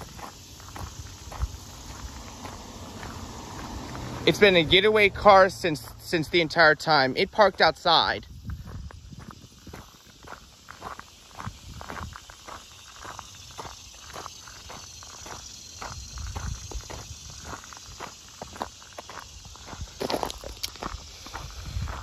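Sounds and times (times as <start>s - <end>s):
footsteps crunching on gravel: 0.0s - 22.0s.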